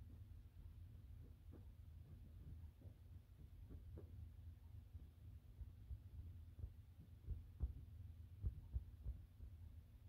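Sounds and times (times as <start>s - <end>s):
fingernails tapping on fabric: 5.0s - 9.7s.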